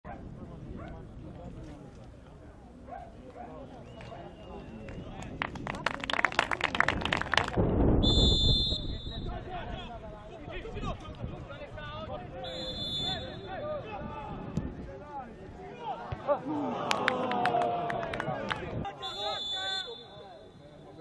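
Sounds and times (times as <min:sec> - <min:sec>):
people clapping: 0:03.9 - 0:07.7, 0:16.6 - 0:18.9
whistle blown: 0:08.0 - 0:09.4, 0:12.4 - 0:13.6, 0:19.0 - 0:20.7
players and spectators shouting: 0:12.4 - 0:21.0.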